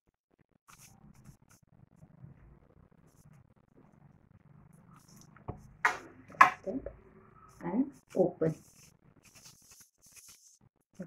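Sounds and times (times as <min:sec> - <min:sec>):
crepe paper crinkling: 0:08.7 - 0:10.6.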